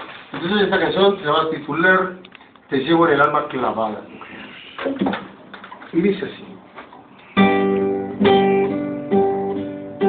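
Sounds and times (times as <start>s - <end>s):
man speaking: 0.4s - 4.7s, 5.9s - 6.7s.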